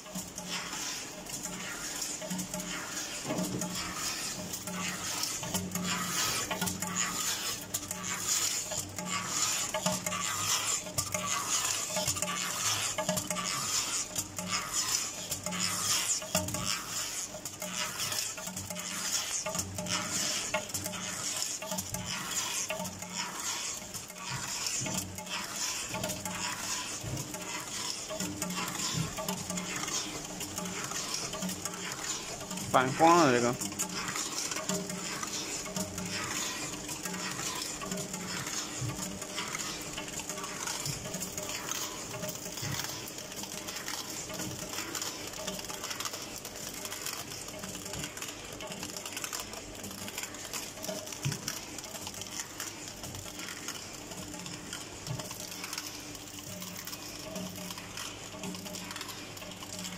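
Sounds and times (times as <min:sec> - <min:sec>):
continuous high whine: 0:00.0 - 0:59.9
machine clatter of rapid clicks: 0:00.0 - 0:59.9.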